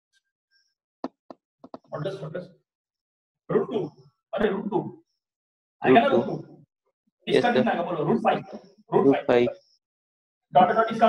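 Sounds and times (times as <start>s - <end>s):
man speaking: 1.9s - 2.4s, 3.5s - 4.9s, 5.8s - 6.4s, 7.3s - 9.5s, 10.6s - 11.0s.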